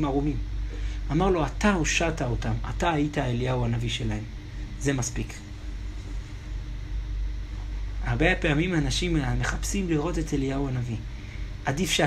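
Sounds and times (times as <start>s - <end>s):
low background rumble and hum: 0.0s - 12.0s.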